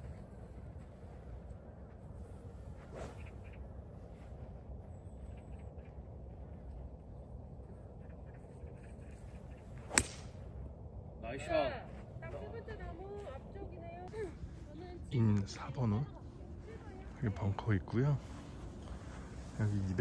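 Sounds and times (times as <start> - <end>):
low background noise: 0.0 - 20.0
golf club striking ball: 9.9 - 10.4.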